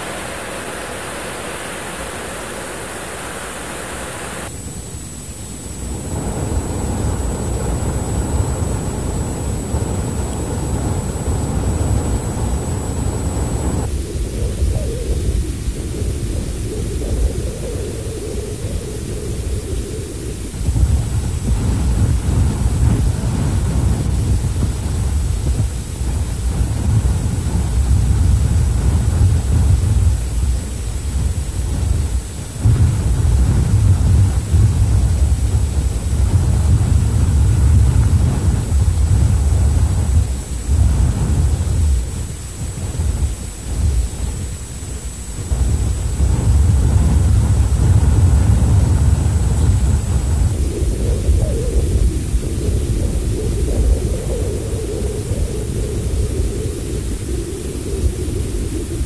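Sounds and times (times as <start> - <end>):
faint high whine: 0.0 - 59.0
wind buffeting microphone: 0.0 - 59.0.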